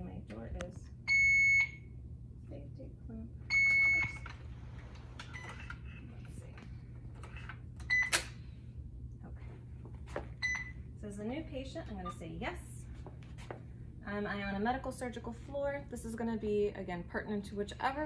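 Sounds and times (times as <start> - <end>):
steady low hum: 0.0 - 18.0
infusion pump beeping: 1.1 - 2.0, 3.5 - 4.4, 7.8 - 8.4, 10.4 - 10.8.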